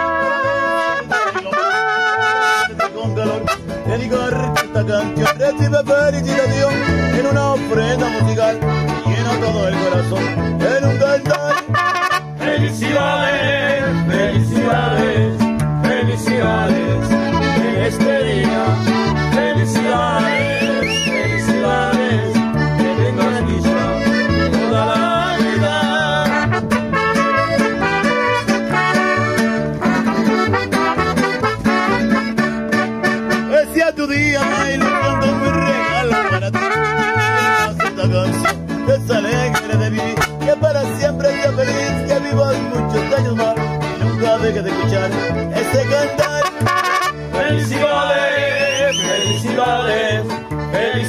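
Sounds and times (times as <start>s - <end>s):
mariachi band playing: 0.0s - 51.0s.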